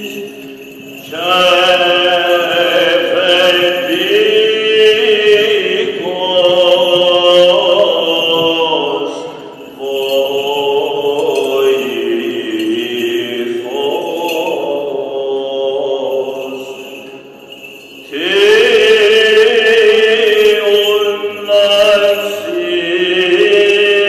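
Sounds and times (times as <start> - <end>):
louder voice chanting: 0.0 - 16.8, 18.1 - 24.0.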